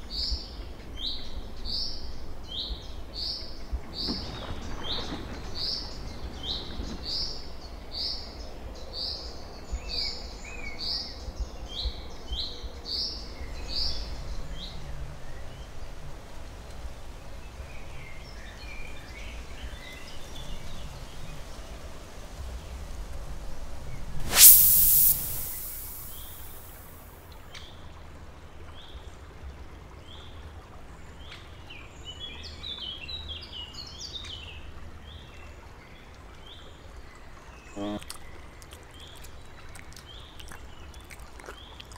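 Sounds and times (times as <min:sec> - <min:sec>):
loud burst of noise: 0:24.2 - 0:26.9.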